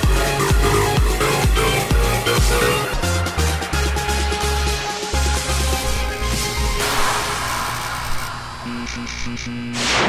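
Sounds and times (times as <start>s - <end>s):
whoosh: 9.8s - 10.0s.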